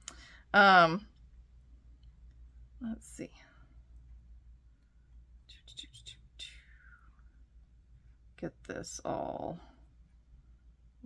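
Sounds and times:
woman whispering: 5.5s - 7.1s.

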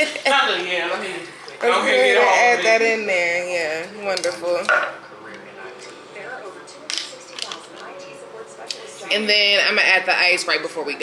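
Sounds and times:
faint background talk: 0.0s - 11.0s.

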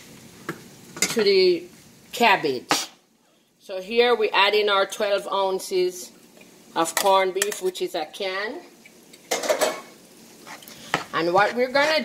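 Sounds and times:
soft sizzle: 0.0s - 12.0s
metal spoon scraping a skillet: 9.3s - 12.0s.

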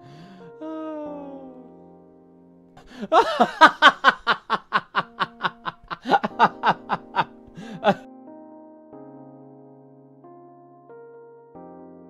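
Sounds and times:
rhythmic laughter: 2.9s - 8.0s.

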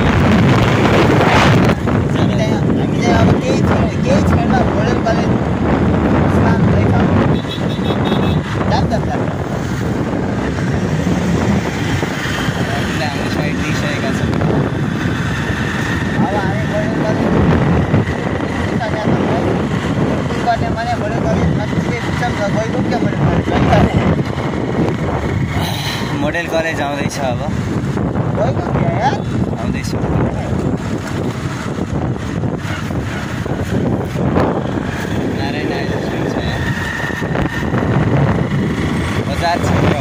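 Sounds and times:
road noise: 0.0s - 40.0s
wind rushing over microphone: 0.0s - 40.0s
motorcycle engine: 5.3s - 28.4s, 29.1s - 40.0s.

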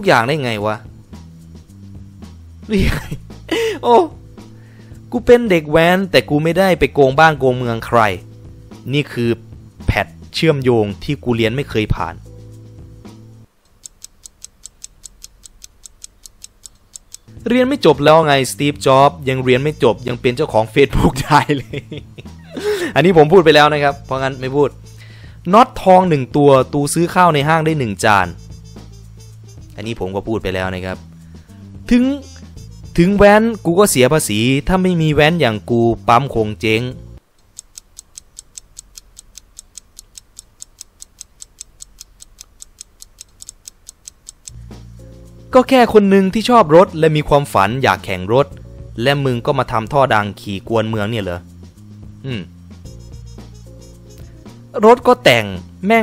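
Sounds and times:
clock ticking: 13.6s - 17.4s, 37.2s - 44.6s.

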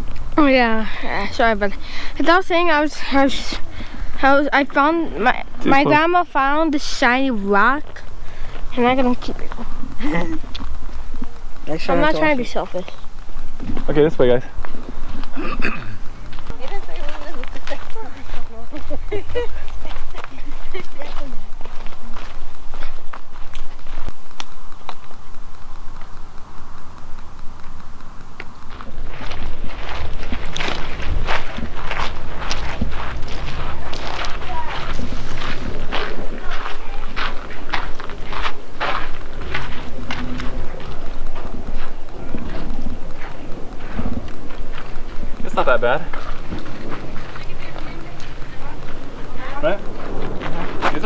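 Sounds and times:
footsteps on gravel path: 0.0s - 51.0s
steady low rumble: 0.0s - 51.0s.

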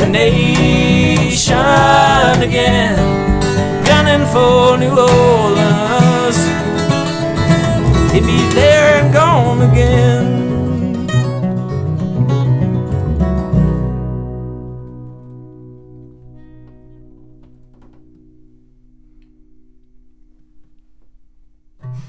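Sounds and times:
upright bass: 0.0s - 21.3s
acoustic guitars: 0.0s - 22.0s.

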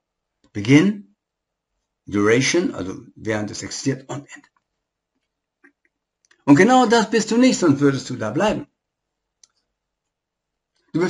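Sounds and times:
man's voice: 0.6s - 1.0s, 2.1s - 4.4s, 6.5s - 8.7s.

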